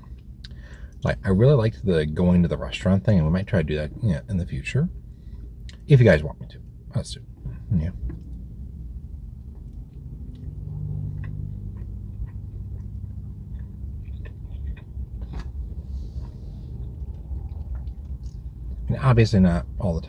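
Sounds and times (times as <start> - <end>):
steady low rumble: 0.0 - 20.0
brief low hum: 7.4 - 19.0
close-miked chewing: 7.4 - 19.0.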